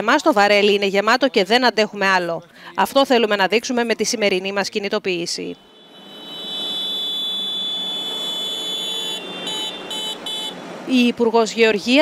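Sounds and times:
high-pitched horn toots: 5.5s - 10.7s
tractors passing: 5.6s - 12.0s.

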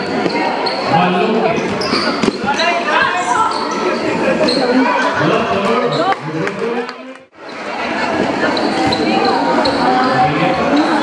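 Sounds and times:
court shoes squeaking: 0.0s - 6.2s, 7.4s - 11.0s
crowd chatter and shouts: 0.0s - 11.0s.

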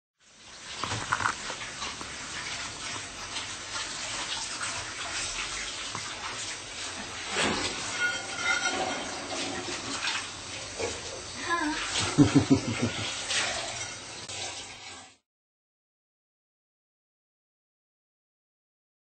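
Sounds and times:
tap water running into sink: 0.2s - 15.2s.

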